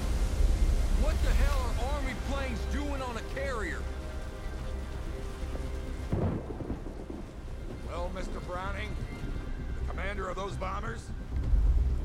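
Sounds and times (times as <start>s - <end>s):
deep soundtrack rumble: 0.0s - 12.0s.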